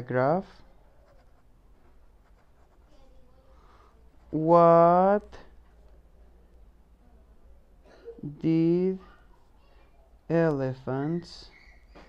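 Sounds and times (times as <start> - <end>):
pen scratching on paper: 1.0 - 2.9.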